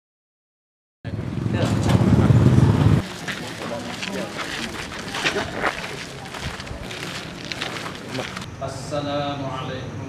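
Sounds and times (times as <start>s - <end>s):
voices: 1.1s - 10.0s.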